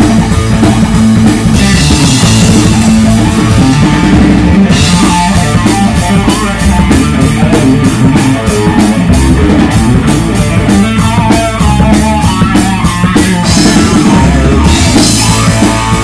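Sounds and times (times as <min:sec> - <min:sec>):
bass guitar: 0:00.0 - 0:16.0
drum kit beat: 0:00.0 - 0:16.0
electric guitar: 0:00.0 - 0:16.0.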